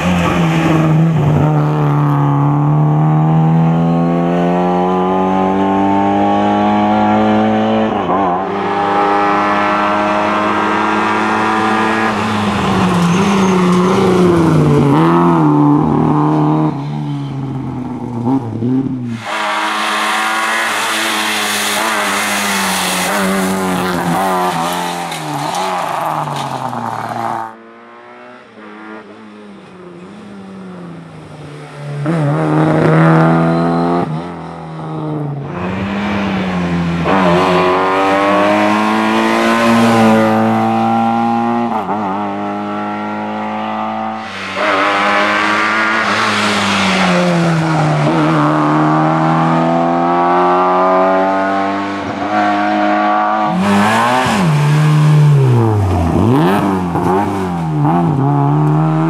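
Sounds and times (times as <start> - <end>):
rally car engine at full throttle: 0.0 - 59.0.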